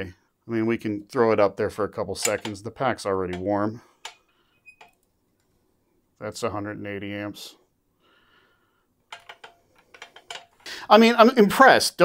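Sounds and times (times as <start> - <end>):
light sharp clicks and clinks: 9.1 - 10.7
man's voice: 10.7 - 12.0.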